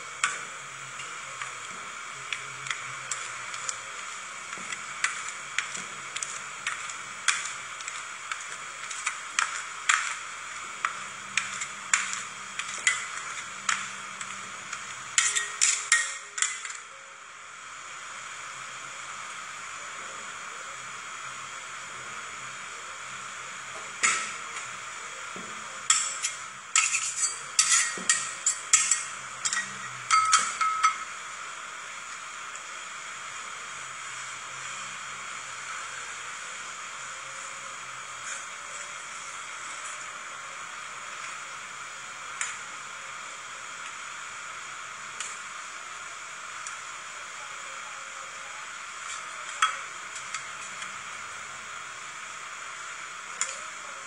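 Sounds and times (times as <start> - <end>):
steady low hum: 0.0 - 54.0
metal spatulas tapping on steel plate: 10.8 - 16.8, 25.9 - 31.1.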